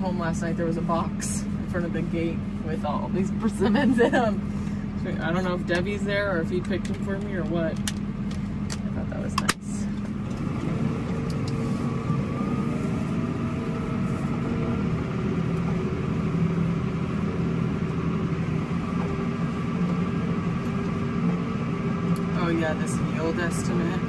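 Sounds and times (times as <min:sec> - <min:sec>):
tractor engine running: 0:00.0 - 0:24.0.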